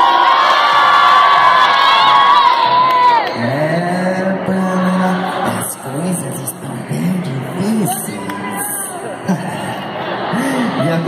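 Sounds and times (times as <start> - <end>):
audience cheering and screaming: 0.0 - 3.4.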